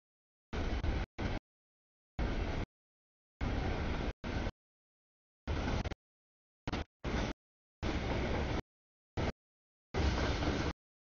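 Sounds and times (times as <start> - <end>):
freight train rumbling past: 7.0 - 8.6.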